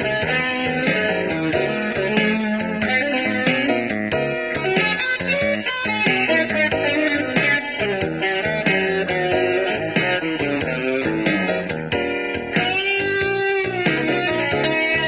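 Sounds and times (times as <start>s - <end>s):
bass guitar: 0.0s - 15.0s
electric guitar blues: 0.0s - 15.0s.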